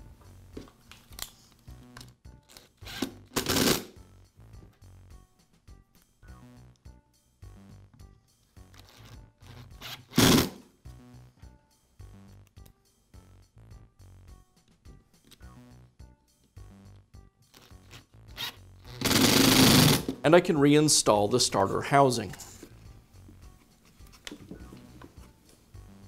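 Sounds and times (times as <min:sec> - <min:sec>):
soft background music: 0:00.0 - 0:26.0
power screwdriver running: 0:18.4 - 0:20.1.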